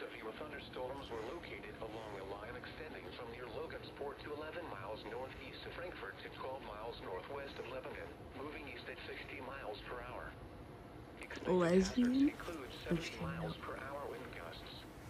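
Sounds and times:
person speaking over radio: 12.8 - 13.7.

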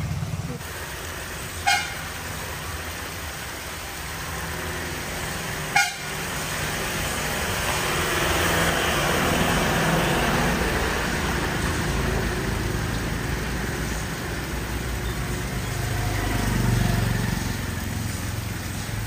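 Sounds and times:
traffic motor rumble: 0.0 - 19.0
vehicle engine passing: 0.0 - 19.0
car horn toot: 1.6 - 2.1, 5.7 - 6.1.

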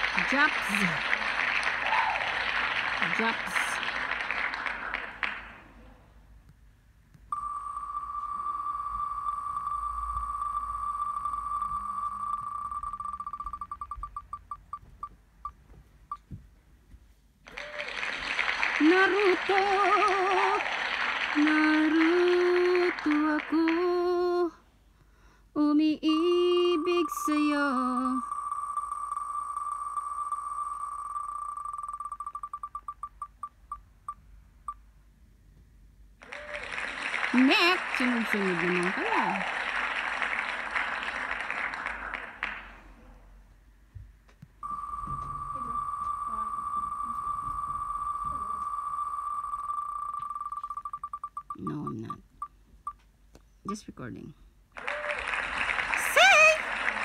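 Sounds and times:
applause-like noise: 0.0 - 5.7, 17.5 - 23.8, 36.2 - 42.9, 54.8 - 57.0.

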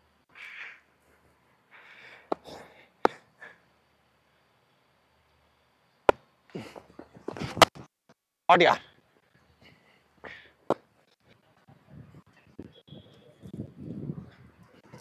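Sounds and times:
man breathing: 0.3 - 3.7, 9.6 - 10.6.

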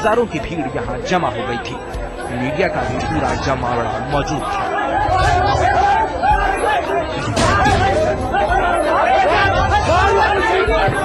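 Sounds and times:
crowd shouting and talking: 0.0 - 11.0.

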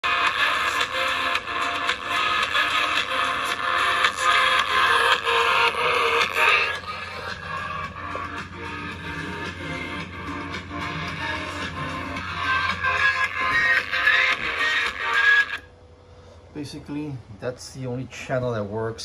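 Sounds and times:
thin music through a speaker: 0.0 - 19.0.

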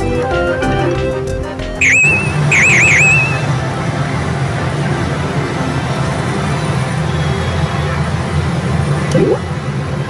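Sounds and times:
slot machines music and effects: 1.8 - 3.6.

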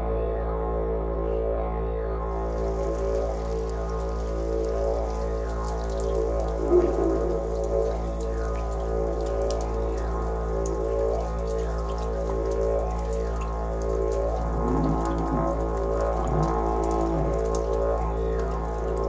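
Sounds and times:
didgeridoo drone: 0.0 - 19.0
water dripping and pattering: 2.3 - 19.0.

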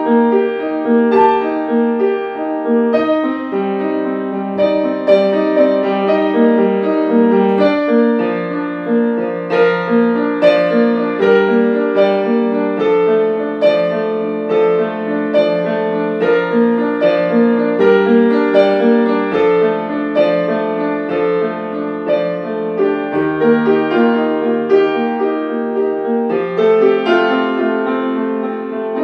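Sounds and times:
grand piano solo: 0.0 - 29.0.

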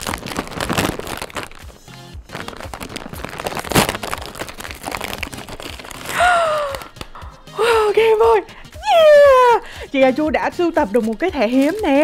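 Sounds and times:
plastic snack bag crinkling: 0.0 - 7.2, 10.1 - 12.0
background music: 0.0 - 12.0.

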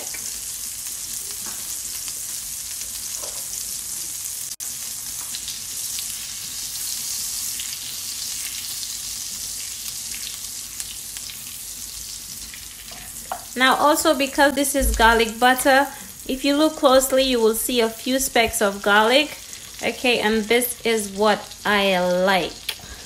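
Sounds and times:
butter sizzling in a wok: 0.0 - 23.0.

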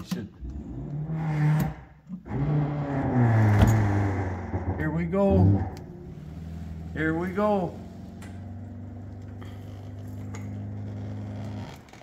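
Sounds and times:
convertible top motor humming: 5.7 - 12.0.

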